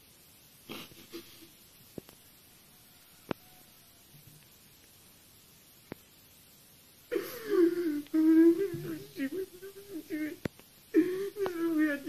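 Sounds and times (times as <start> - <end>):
boy wailing: 7.1 - 10.4, 11.0 - 12.0.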